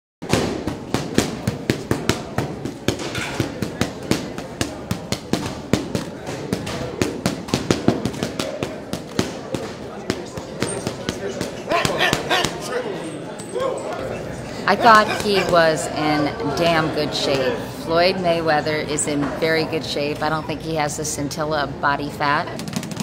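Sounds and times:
punches smacking focus mitts: 0.2s - 12.7s.

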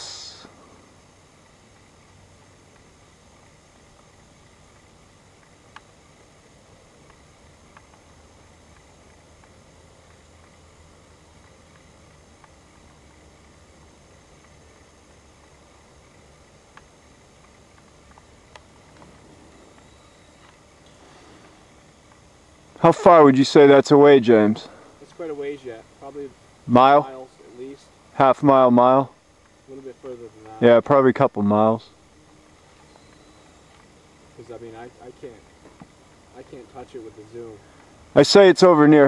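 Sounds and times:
faint background hiss: 0.0s - 39.0s
low hum: 0.0s - 39.0s.

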